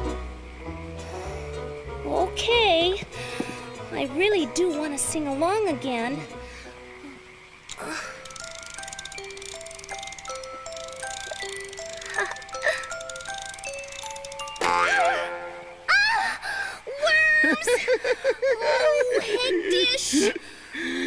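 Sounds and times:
hand-cranked toy box tune: 7.7 - 15.2.

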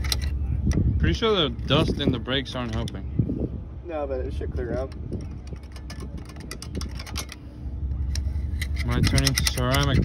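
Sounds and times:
low steady rumble: 0.0 - 10.0
screwdriver scraping and clicking on brake: 8.0 - 10.0.

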